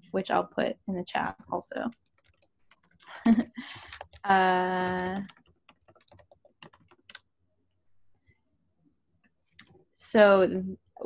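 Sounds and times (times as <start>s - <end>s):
faint keyboard typing: 1.2s - 7.3s.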